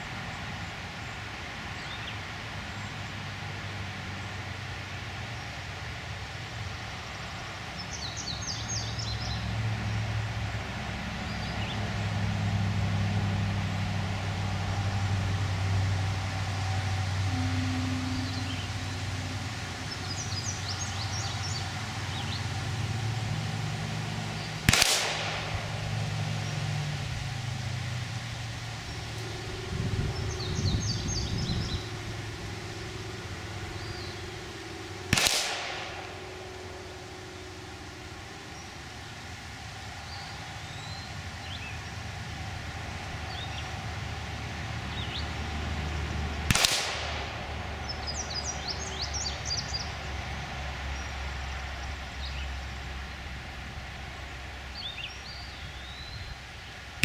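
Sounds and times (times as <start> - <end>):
birds chirping: 0.0 - 3.8, 5.2 - 12.1, 14.6 - 57.0
low steady drone: 0.0 - 57.0
pistol shots: 24.6 - 25.8, 35.1 - 36.6, 46.5 - 47.4.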